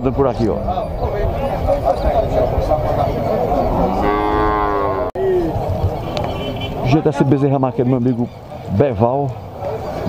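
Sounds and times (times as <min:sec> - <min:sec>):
cattle mooing: 0:03.6 - 0:05.1.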